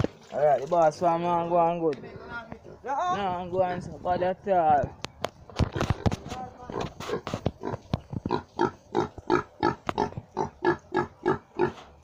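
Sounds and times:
pig grunting: 6.7s - 11.8s.

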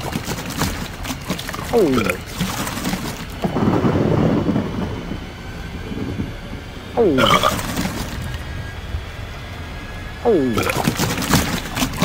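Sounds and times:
loud rough rumbling: 0.0s - 12.0s.

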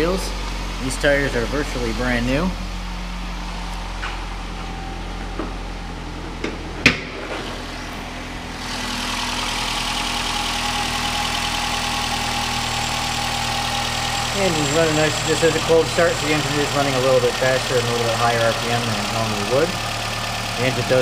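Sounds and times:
car engine idling: 0.0s - 21.0s.

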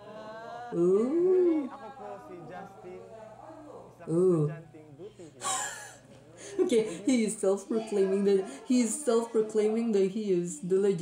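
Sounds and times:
man stifling laughter: 5.4s - 6.8s.

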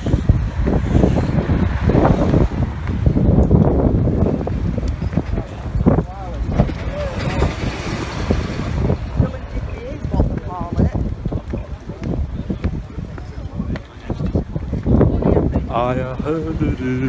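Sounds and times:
passing traffic: 0.0s - 17.0s
wind buffeting microphone: 0.0s - 17.0s
people talking nearby: 5.1s - 17.0s.

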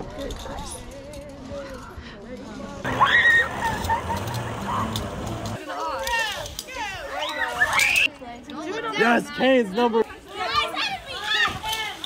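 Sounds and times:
people calling out and talking: 0.0s - 12.0s
loud exclamation: 2.9s - 3.8s.

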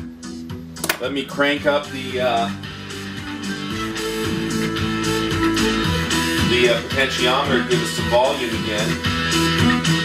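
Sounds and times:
guitar music through speakers: 0.0s - 10.0s.

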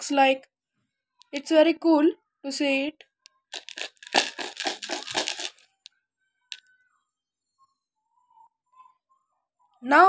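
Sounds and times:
beads rattling in a kaleidoscope: 3.6s - 5.8s.

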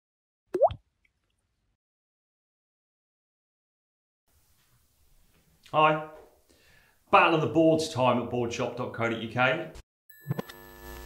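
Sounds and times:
water drop plop effect: 0.6s - 0.8s.

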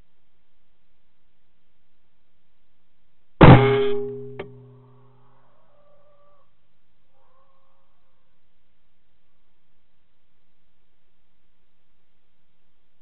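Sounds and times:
rifle shot: 3.4s - 4.5s.

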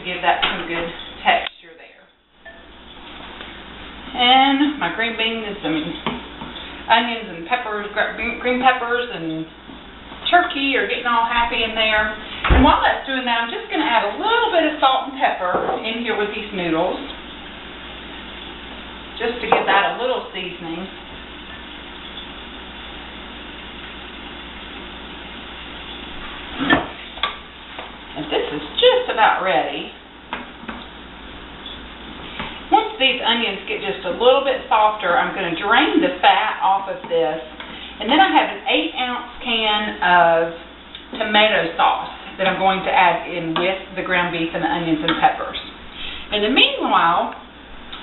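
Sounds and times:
food sizzling in a skillet: 16.0s - 29.4s.

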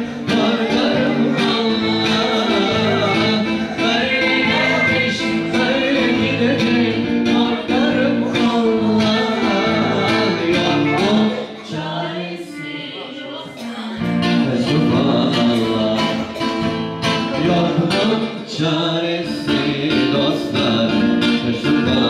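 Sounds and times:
live band with steady beat: 0.0s - 22.0s
person singing into a microphone: 0.0s - 22.0s.

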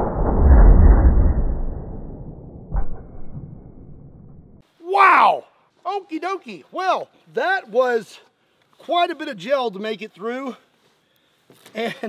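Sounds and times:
slowed harpoon gun boom: 0.0s - 4.6s
thud: 0.0s - 4.6s.

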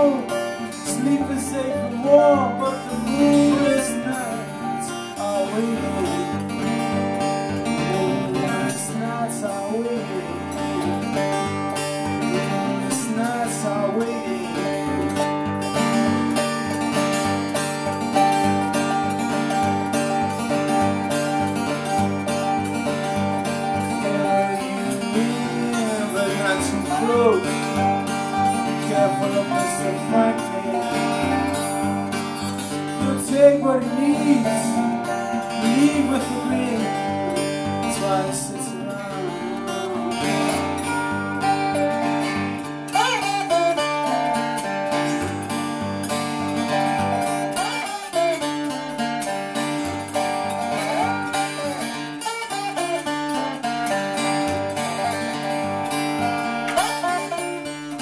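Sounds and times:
acoustic guitar picked chords: 0.0s - 58.0s.

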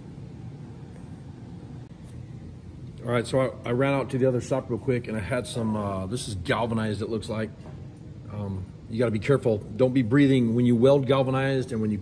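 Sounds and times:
shop room tone: 0.0s - 12.0s.

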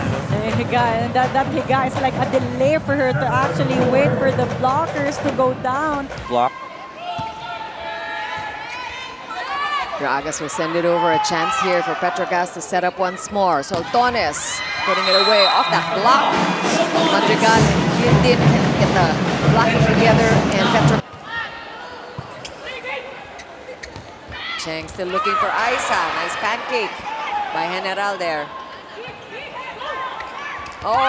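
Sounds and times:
hall background noise: 0.0s - 7.0s, 10.0s - 21.1s
crowd shouting and cheering: 6.1s - 23.2s, 24.2s - 31.0s
players calling: 13.1s - 21.0s.

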